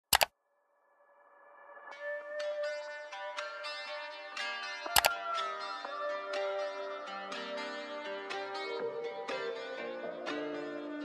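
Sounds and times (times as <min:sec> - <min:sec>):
soft music with held tones: 0:01.9 - 0:11.0.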